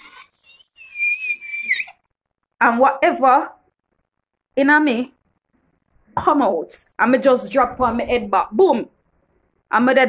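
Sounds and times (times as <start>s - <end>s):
woman's high-pitched squealing cry: 0.0s - 2.0s.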